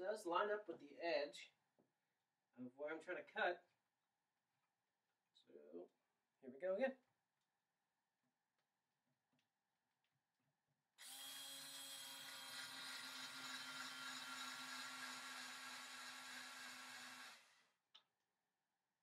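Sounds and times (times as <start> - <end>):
cordless drill spinning: 11.0 - 17.8.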